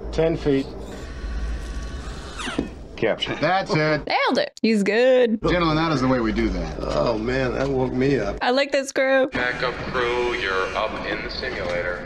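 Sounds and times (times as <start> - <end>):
low rumble with hiss: 5.4 - 8.4, 9.4 - 12.0.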